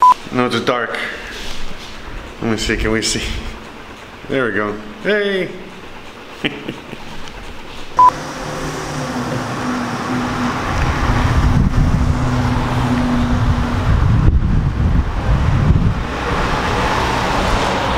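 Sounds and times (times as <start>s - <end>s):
car driving past: 8.0s - 17.9s.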